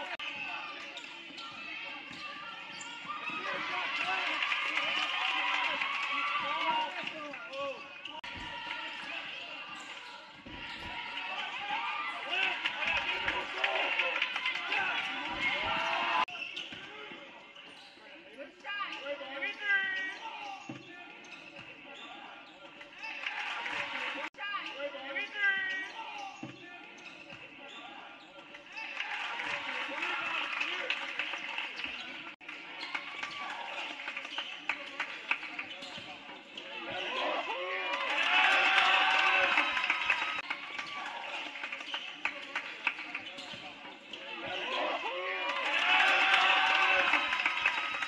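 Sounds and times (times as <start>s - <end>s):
players and spectators shouting: 0.0s - 16.5s, 22.0s - 26.4s, 28.8s - 31.7s, 36.6s - 41.7s, 44.1s - 48.0s
sneaker squeaks on gym floor: 0.3s - 3.4s, 7.4s - 11.7s, 15.3s - 19.2s, 19.8s - 23.2s, 25.5s - 28.9s, 31.7s - 37.4s, 40.8s - 45.0s.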